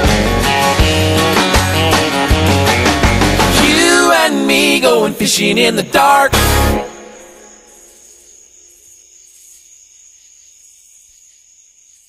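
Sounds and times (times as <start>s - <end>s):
crickets chirping: 3.6s - 12.0s.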